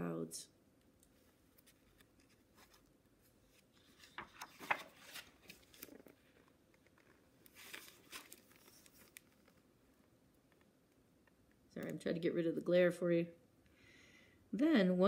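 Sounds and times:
book page turning: 0:01.1 - 0:09.7.

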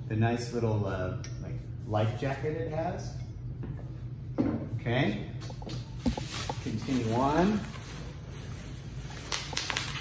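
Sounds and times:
packing peanuts and bubble wrap rustling: 0:06.1 - 0:10.0
sharp plastic crinkles: 0:09.0 - 0:10.0.

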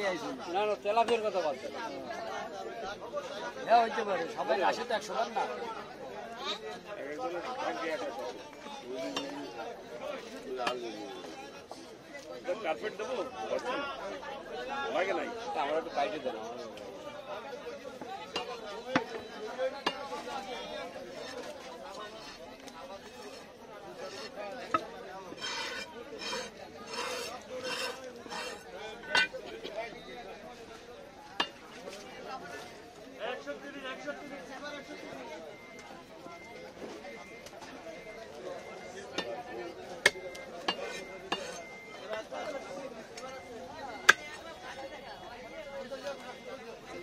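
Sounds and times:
people chattering: 0:00.0 - 0:47.0
knife scraping on sharpening steel: 0:24.0 - 0:29.4, 0:40.7 - 0:41.7.

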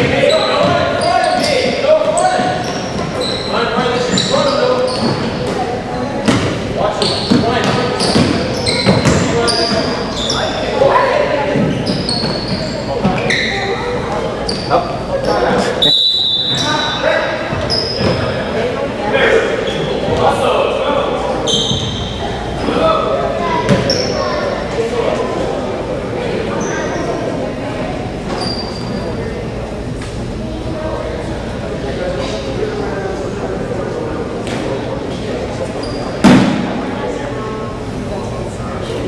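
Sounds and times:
shoes squeaking on wooden floor: 0:00.0 - 0:18.5, 0:21.4 - 0:22.2, 0:23.4 - 0:24.4, 0:28.3 - 0:29.2
voices echoing in hall: 0:00.0 - 0:39.0
basketball bouncing: 0:06.2 - 0:06.6, 0:07.2 - 0:09.4
referee's whistle: 0:15.8 - 0:17.0.

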